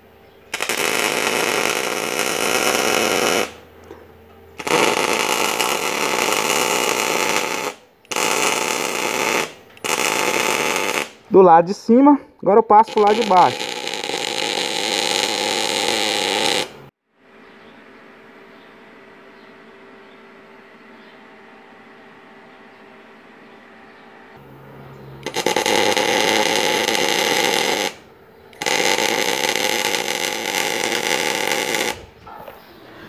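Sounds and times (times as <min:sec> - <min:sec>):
welding arc sizzling: 0:00.5 - 0:03.6, 0:04.6 - 0:11.8, 0:12.5 - 0:16.9, 0:25.2 - 0:32.2.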